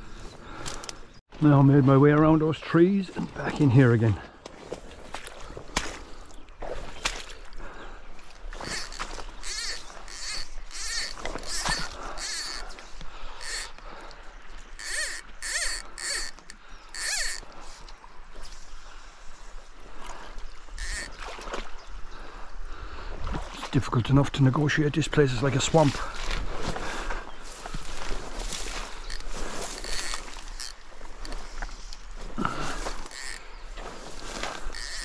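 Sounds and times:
footsteps squelching through wet grass: 3.6s - 12.4s, 25.4s - 35.0s.

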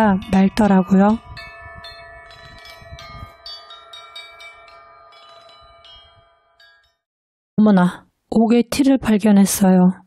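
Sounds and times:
tuned chimes struck by hand: 0.0s - 7.1s.

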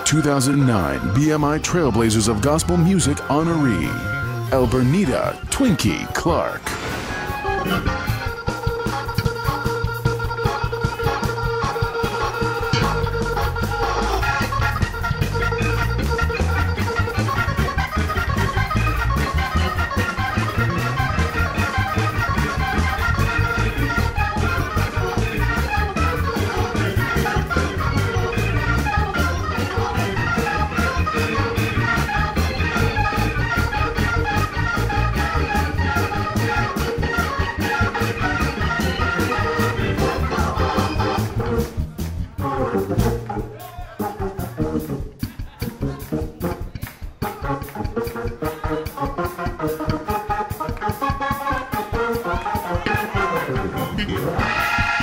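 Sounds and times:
organ playing: 0.0s - 55.0s.

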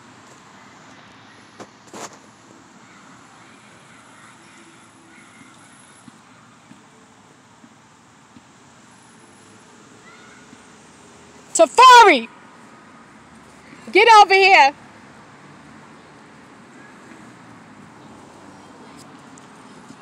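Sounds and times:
outdoor background noise: 0.0s - 20.0s.

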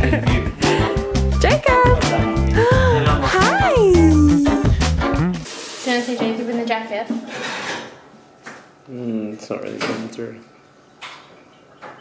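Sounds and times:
background music: 0.0s - 5.5s
person speaking: 2.6s - 4.9s
dishes and cutlery clattering: 7.2s - 8.0s.

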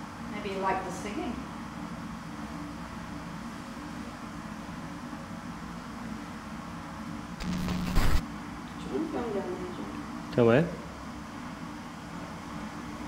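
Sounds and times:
low hum and hiss: 0.0s - 13.0s
harsh buzzing burst: 7.4s - 8.2s.

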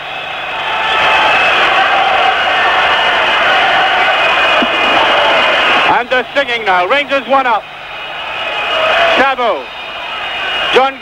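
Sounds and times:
stadium crowd singing: 3.4s - 5.9s.

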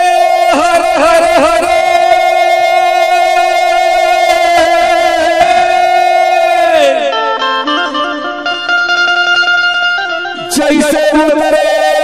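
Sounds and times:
banjo instrumental: 0.1s - 11.0s.

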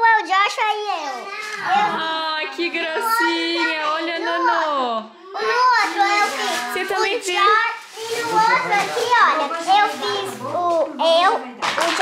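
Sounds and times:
child's voice: 0.0s - 2.0s, 3.0s - 12.0s.

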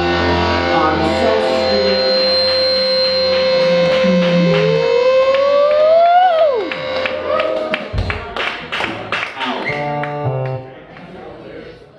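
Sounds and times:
electric guitar feedback: 0.0s - 8.2s, 9.4s - 10.8s
steady drone: 0.0s - 8.2s.

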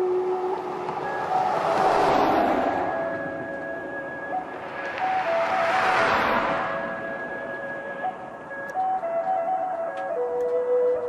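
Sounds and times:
car passing: 0.0s - 9.6s
flute-like music tone: 0.0s - 11.0s.

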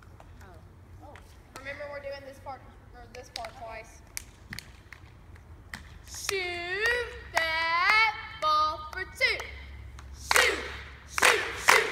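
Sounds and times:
sharp hand claps: 8.9s - 11.9s.

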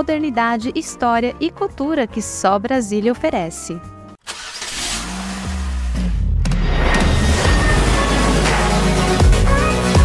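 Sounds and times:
car engine starting and revving: 4.2s - 10.0s.

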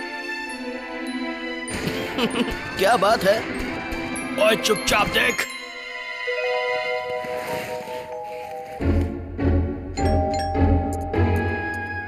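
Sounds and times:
background music: 0.0s - 12.0s
cartoon doorbell chime: 10.0s - 11.8s.

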